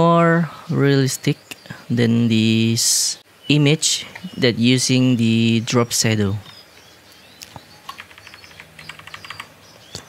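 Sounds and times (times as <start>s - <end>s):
computer keyboard keys clicking: 7.5s - 10.0s.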